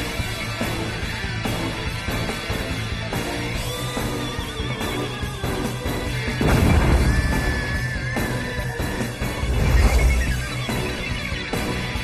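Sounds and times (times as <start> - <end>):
tv drama theme music: 0.0 - 12.0.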